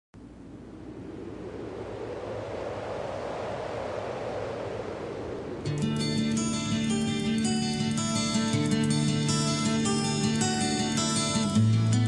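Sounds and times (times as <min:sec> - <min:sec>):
steady rushing noise: 0:00.2 - 0:09.2
strummed acoustic guitar: 0:05.8 - 0:12.0.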